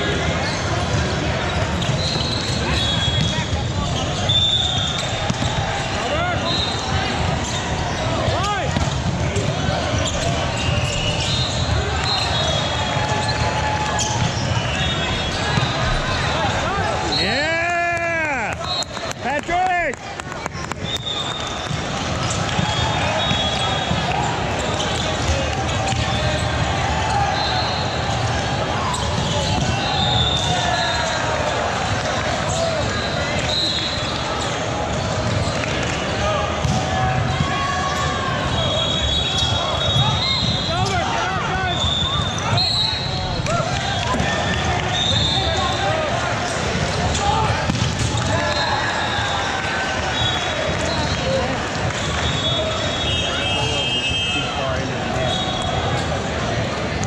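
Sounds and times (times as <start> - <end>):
voices and calls of players: 0.0 - 57.0
volleyballs being hit and bounced: 0.3 - 27.2, 28.0 - 31.0, 31.6 - 38.6, 43.3 - 48.8.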